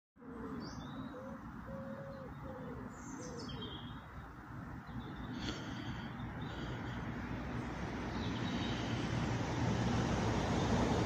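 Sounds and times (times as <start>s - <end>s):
pigeon cooing: 0.2s - 3.9s
steady background noise: 0.2s - 11.0s
high small-bird chirps: 0.5s - 6.8s, 8.1s - 9.0s.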